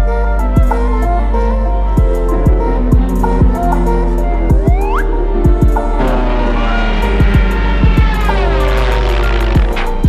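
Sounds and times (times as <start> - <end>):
orchestral cartoon music: 0.0 - 10.0
low drone: 0.1 - 10.0.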